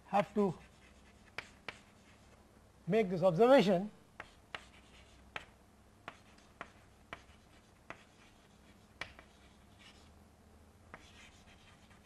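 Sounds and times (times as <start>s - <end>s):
man speaking: 0.0s - 0.6s, 2.9s - 4.0s
chalk tapping on blackboard: 0.6s - 2.3s, 4.2s - 10.0s, 10.9s - 12.0s.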